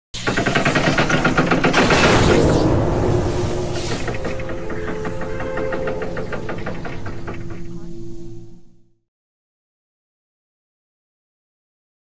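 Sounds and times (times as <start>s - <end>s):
rapid mechanical clicks: 0.2s - 2.8s, 3.7s - 7.8s
whoosh: 1.8s - 8.8s.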